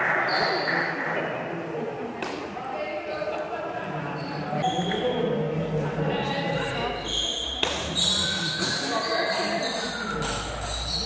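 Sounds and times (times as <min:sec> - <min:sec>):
voices talking in echoing hall: 0:00.0 - 0:11.0
table tennis ball bouncing: 0:07.6 - 0:08.3.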